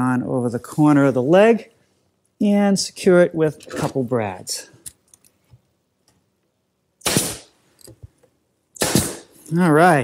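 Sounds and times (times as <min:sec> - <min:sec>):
brad nailer firing: 0:07.0 - 0:07.5, 0:08.8 - 0:09.4.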